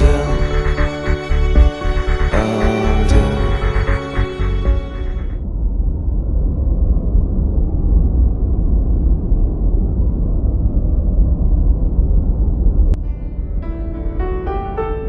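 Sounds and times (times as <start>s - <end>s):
music: 0.0s - 5.4s, 13.0s - 15.0s
loud steady low rumble: 0.0s - 14.2s.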